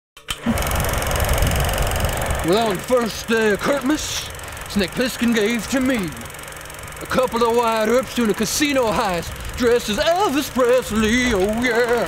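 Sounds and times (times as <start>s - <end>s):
machine running with clatter: 0.2s - 12.0s.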